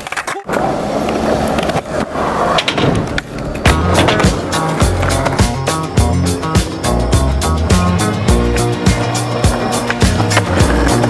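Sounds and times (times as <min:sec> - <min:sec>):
skateboard clicks and knocks: 0:00.0 - 0:05.9, 0:08.5 - 0:11.0
skateboard wheels rolling on concrete: 0:00.0 - 0:11.0
music with steady beat: 0:03.7 - 0:11.0.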